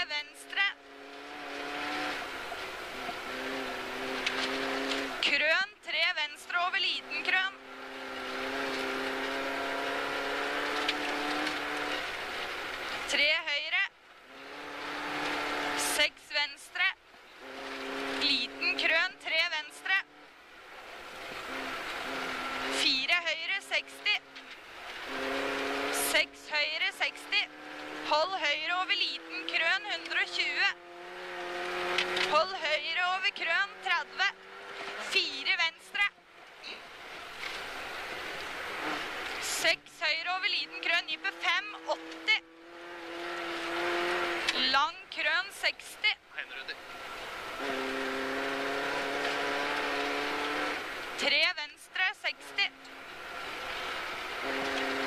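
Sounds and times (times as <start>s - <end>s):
rally car engine revving: 0.0s - 55.0s
person speaking: 18.2s - 20.1s, 22.7s - 24.2s, 25.9s - 30.8s, 35.0s - 36.8s, 51.2s - 52.8s.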